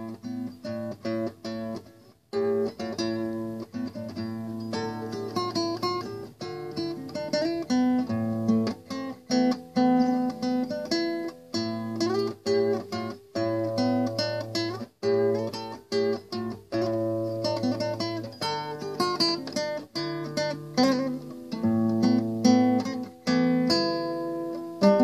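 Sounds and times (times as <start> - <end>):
fingerstyle classical guitar: 0.0 - 25.0.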